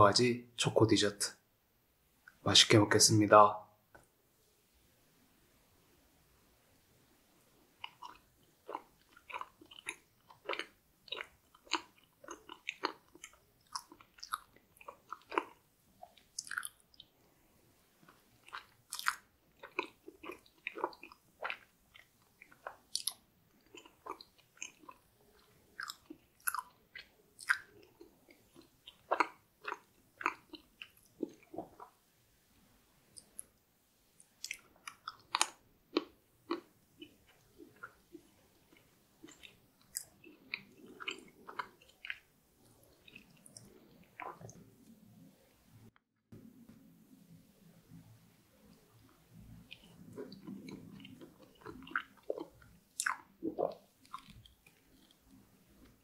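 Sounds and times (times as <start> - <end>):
person chewing with wet smacks: 7.8 - 17.2, 18.0 - 32.1, 33.1 - 45.2, 46.4 - 56.0.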